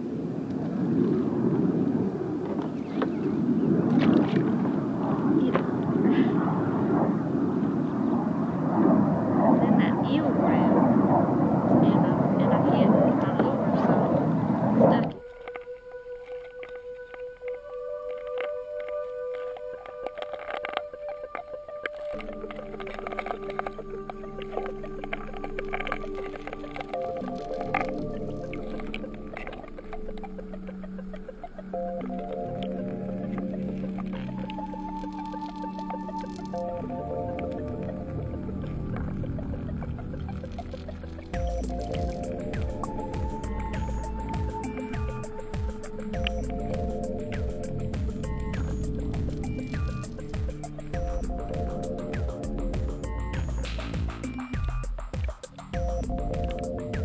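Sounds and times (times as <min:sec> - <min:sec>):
wind buffeting microphone: 0:00.0 - 0:16.2, 0:21.0 - 0:57.0
background music with held notes: 0:15.2 - 0:57.0
sharp clicks: 0:15.2 - 0:57.0.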